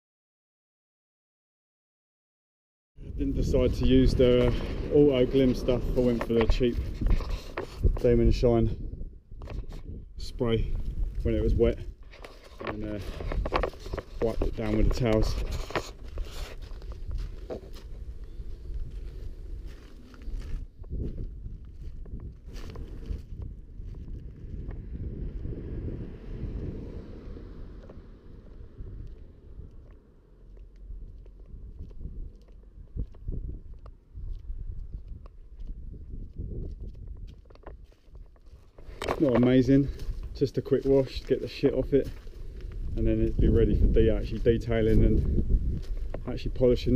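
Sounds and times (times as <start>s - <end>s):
wind rumble on microphone: 3.0s - 46.9s.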